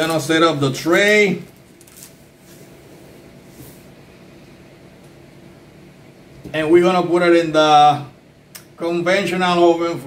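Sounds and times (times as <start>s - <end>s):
plastic wrap rustling: 0.0s - 2.9s
low room hum: 0.0s - 10.0s.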